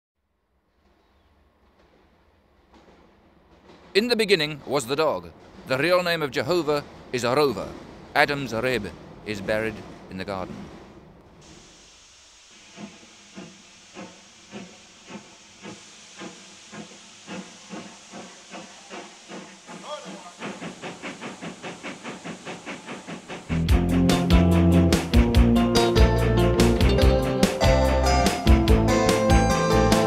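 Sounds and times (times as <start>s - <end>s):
steam locomotive chuffing: 1.6s - 30.0s
steam hissing: 2.7s - 30.0s
loud music: 23.6s - 30.0s.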